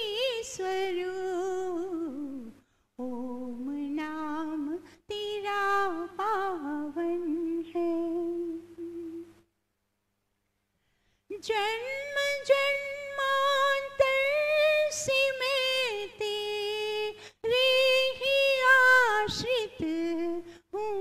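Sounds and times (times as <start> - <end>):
woman singing wordless melody: 0.0 - 9.4, 11.3 - 21.0
breaths: 2.6 - 3.0, 4.8 - 5.1, 10.6 - 11.3, 17.1 - 17.5, 20.4 - 20.8.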